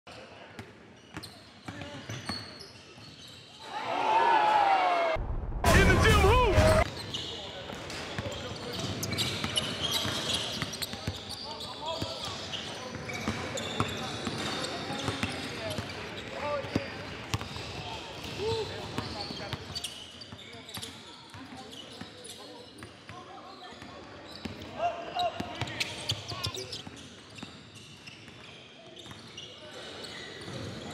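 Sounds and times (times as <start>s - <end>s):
sneakers squeaking: 0.6s - 3.7s, 6.9s - 30.9s
players chatting and calling: 3.6s - 27.0s.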